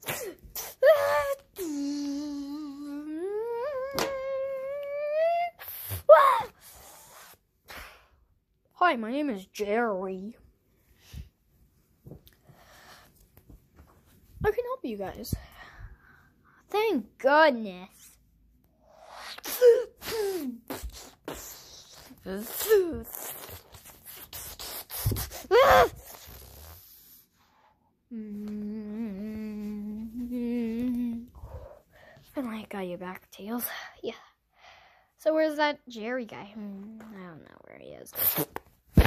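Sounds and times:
child's sneeze-like vocal burst: 0.0s - 1.4s, 5.5s - 8.1s, 19.0s - 26.6s, 38.1s - 39.0s
child humming: 0.6s - 7.0s, 24.3s - 26.8s, 28.1s - 31.8s.

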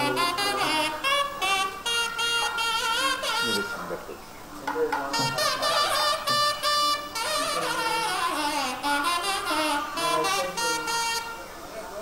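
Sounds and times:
nadaswaram playing held notes: 0.0s - 12.0s.

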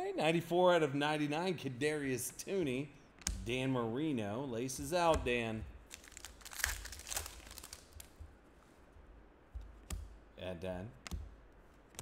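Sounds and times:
wrapper tearing and crinkling: 5.9s - 8.2s.

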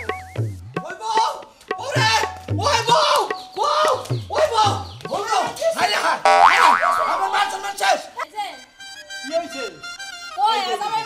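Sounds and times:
cartoon boing sound effect: 6.3s - 7.8s.

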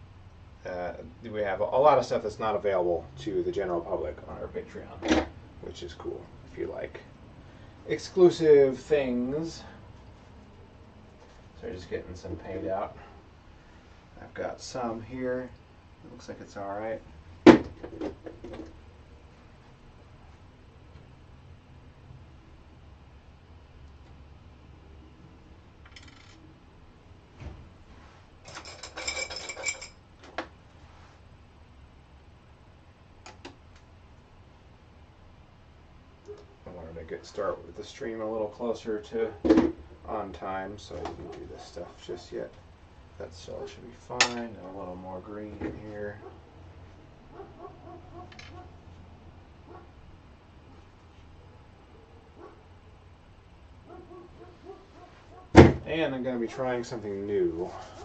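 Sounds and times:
metal and glass clinking: 28.4s - 30.0s
distant dog barking: 36.2s - 36.6s, 46.2s - 46.6s, 47.3s - 48.8s, 49.6s - 50.0s, 51.4s - 52.8s, 53.8s - 55.6s.

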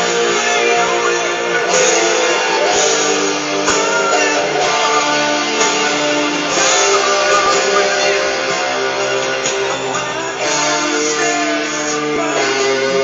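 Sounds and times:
guitar strumming chords: 0.0s - 13.0s.

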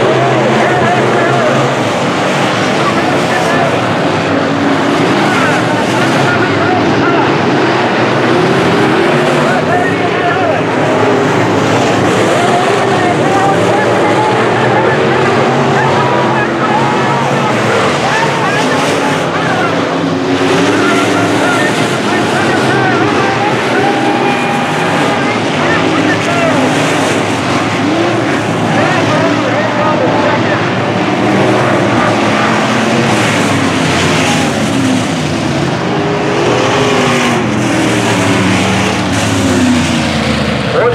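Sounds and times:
race car engines: 0.0s - 40.9s.

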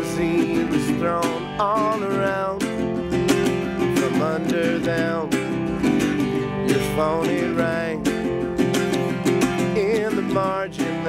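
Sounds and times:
resonator guitar strumming: 0.0s - 11.0s.

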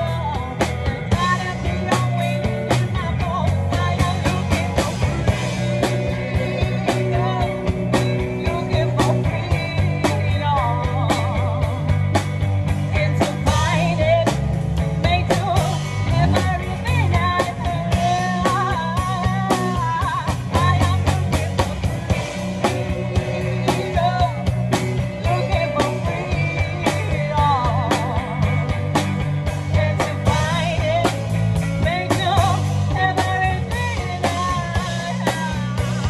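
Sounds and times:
woman singing: 0.0s - 12.1s, 12.7s - 36.0s
live band playing: 0.0s - 36.0s.

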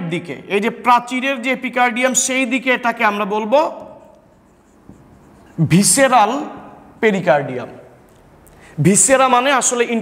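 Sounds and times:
man talking: 0.0s - 4.0s, 5.6s - 7.9s, 8.8s - 10.0s
marker pen writing on whiteboard: 3.6s - 6.6s.

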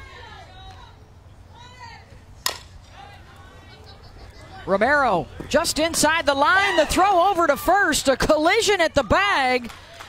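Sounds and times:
bat hitting ball: 2.4s - 2.8s.

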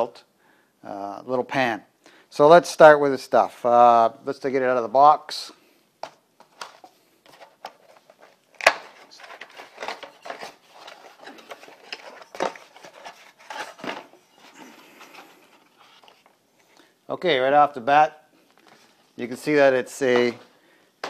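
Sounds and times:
cardboard rustling and scraping: 6.5s - 16.4s.

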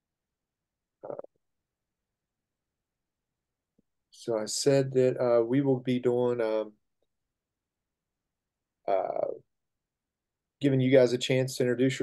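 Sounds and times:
man's short low vocal sound: 1.0s - 1.3s.

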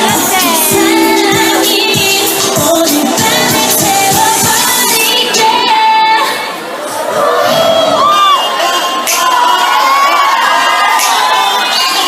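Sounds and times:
backing music: 0.0s - 6.2s
audience cheering and screaming: 4.3s - 12.0s.

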